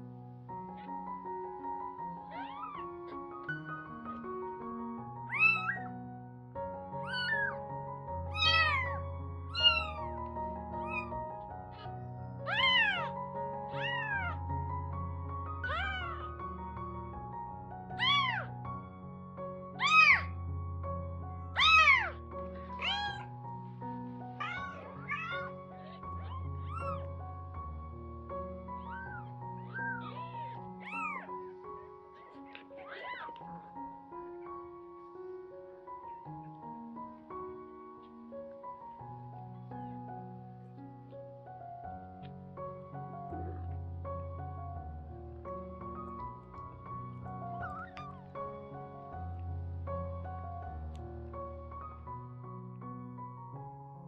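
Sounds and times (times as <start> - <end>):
background music: 0.0 - 54.0
kittens mewing: 2.2 - 3.3, 5.3 - 5.9, 7.0 - 7.6, 8.3 - 14.5, 15.6 - 16.4, 17.9 - 18.6, 19.8 - 20.3, 21.6 - 23.4, 24.2 - 27.2, 28.7 - 33.6, 47.6 - 48.3.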